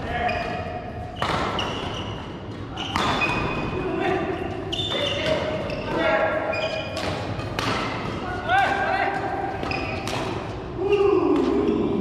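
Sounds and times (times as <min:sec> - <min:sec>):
sneakers squeaking: 0:00.0 - 0:10.7
racket striking shuttlecock: 0:01.2 - 0:01.9, 0:02.9 - 0:03.6, 0:06.9 - 0:10.6.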